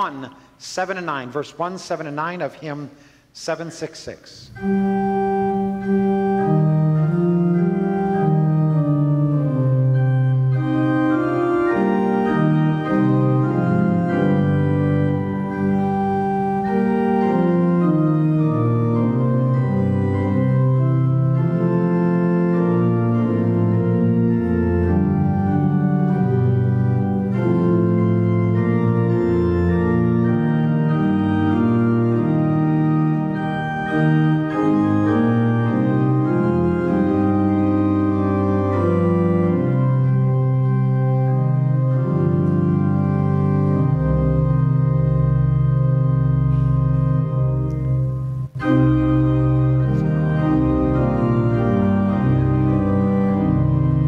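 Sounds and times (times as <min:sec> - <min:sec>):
church organ playing a hymn: 0:00.0 - 0:54.0.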